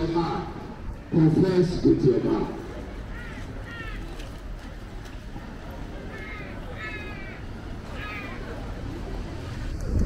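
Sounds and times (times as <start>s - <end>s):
street background: 0.0s - 10.0s.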